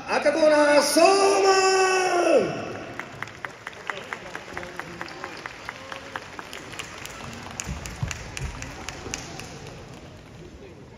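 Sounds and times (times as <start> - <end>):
spectators clapping rhythmically: 2.7 - 10.6.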